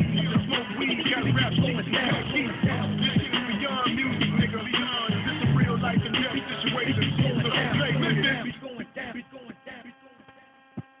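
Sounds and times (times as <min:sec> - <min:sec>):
buzzy electrical hum: 0:00.0 - 0:11.0.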